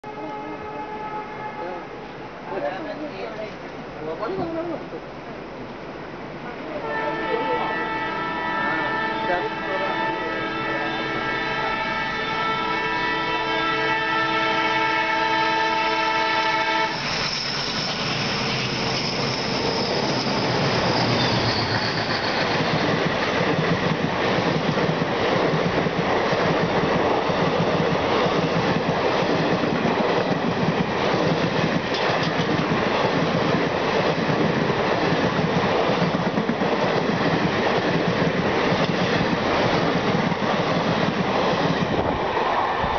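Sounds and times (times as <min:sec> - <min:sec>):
locomotive horn: 0:00.0 - 0:02.0, 0:06.8 - 0:17.0
passing train rumble: 0:00.0 - 0:42.9
train wheel clatter: 0:16.9 - 0:42.1.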